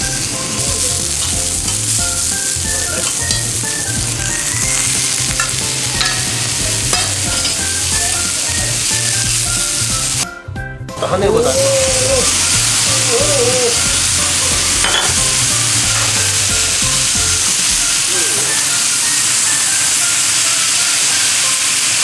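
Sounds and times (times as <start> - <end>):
food sizzling on a griddle: 0.0 - 10.3, 11.0 - 22.0.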